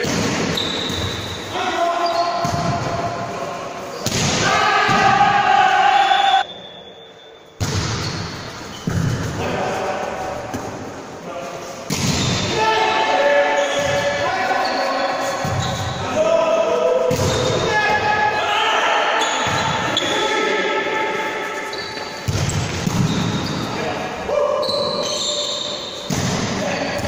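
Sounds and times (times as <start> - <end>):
shoes squeaking on floor: 0.5 - 2.6, 7.9 - 9.3, 13.5 - 16.0, 19.2 - 20.4, 21.4 - 23.9, 24.6 - 26.1
volleyball being hit: 7.6 - 8.1.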